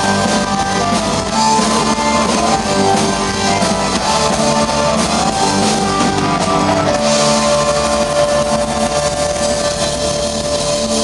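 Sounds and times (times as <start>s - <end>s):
drum kit: 0.0s - 11.0s
electric guitars: 0.0s - 11.0s
keyboard: 0.0s - 11.0s.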